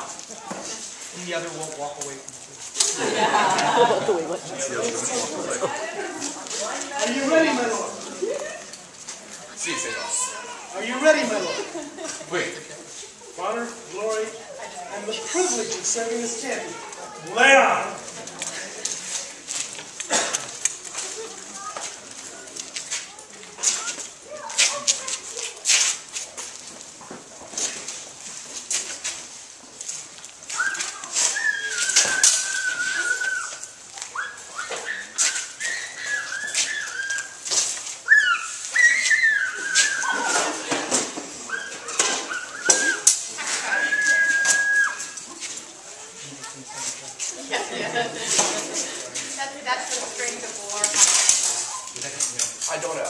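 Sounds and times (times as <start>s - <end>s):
footwork scuffs: 17.8s - 47.5s.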